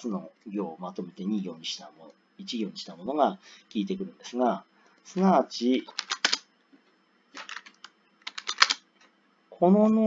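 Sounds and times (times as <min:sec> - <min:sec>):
computer keyboard keystrokes: 0:07.4 - 0:08.8.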